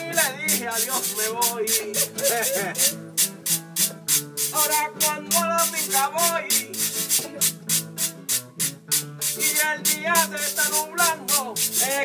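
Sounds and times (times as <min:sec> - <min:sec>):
scraped hand percussion: 0:00.0 - 0:12.0
strummed acoustic guitar: 0:00.0 - 0:12.0.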